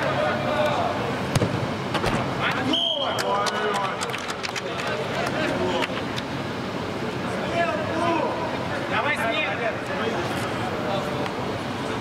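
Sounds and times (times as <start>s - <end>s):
football kicked thud: 1.3s - 2.2s
whistle blast: 2.6s - 3.3s.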